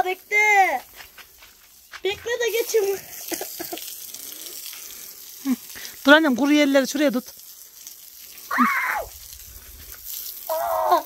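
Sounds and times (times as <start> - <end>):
hose spraying water on blocks: 0.0 - 11.0.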